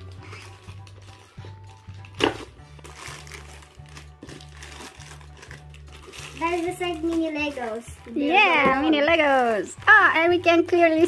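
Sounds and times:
plastic bag tearing open: 0:00.0 - 0:08.2, 0:08.9 - 0:10.4
background music with low bass: 0:00.0 - 0:11.0.

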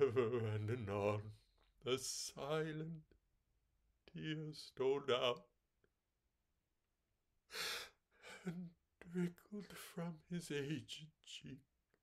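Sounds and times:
man's sharp breath: 0:07.5 - 0:08.0.

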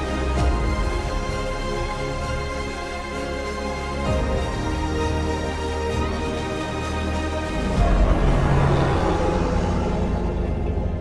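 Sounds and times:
dramatic intro music: 0:00.0 - 0:11.0
deep rumbling boom: 0:07.6 - 0:11.0.

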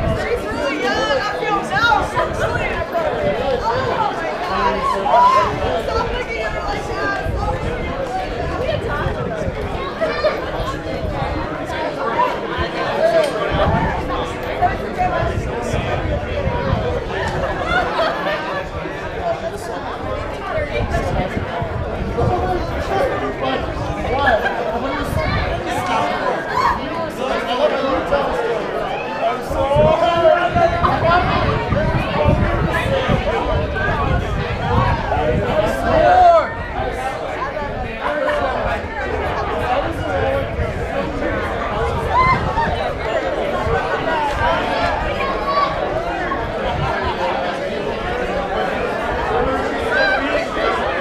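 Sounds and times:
overlapping indistinct chatter: 0:00.0 - 0:51.0
people talking at once: 0:00.0 - 0:51.0.

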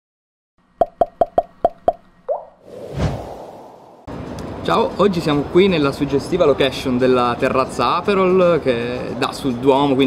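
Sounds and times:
short rising blip: 0:00.8 - 0:04.1
whoosh: 0:02.6 - 0:04.4.

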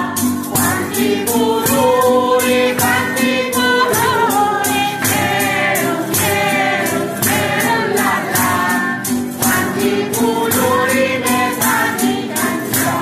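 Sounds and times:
men and woman singing: 0:00.0 - 0:13.0
strummed acoustic guitars: 0:00.0 - 0:13.0
tambourine: 0:00.0 - 0:13.0.

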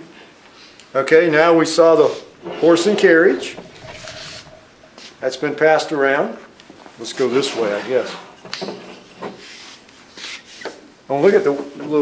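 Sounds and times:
wooden wheels rolling on table: 0:02.4 - 0:05.2.

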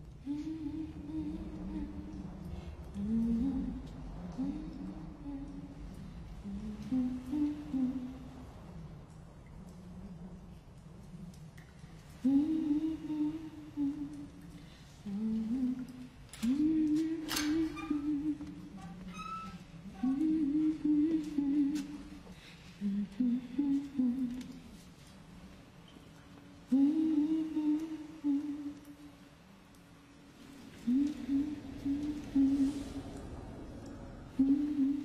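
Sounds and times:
woman humming: 0:00.2 - 0:02.3, 0:15.1 - 0:22.1, 0:26.7 - 0:29.1, 0:30.8 - 0:33.0.

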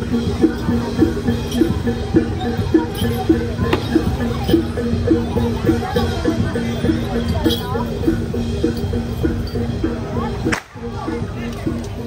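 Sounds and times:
gamelan music: 0:00.0 - 0:12.0
whip crack: 0:10.5 - 0:10.8.

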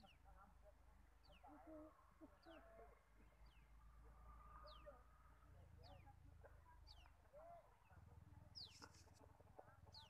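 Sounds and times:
faint bird chirps: 0:01.2 - 0:09.2.

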